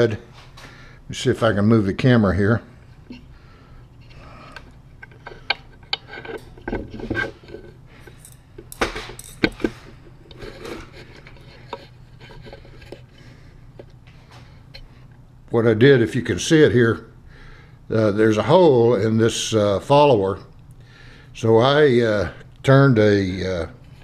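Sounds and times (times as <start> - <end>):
faint low hum: 0.0 - 24.0.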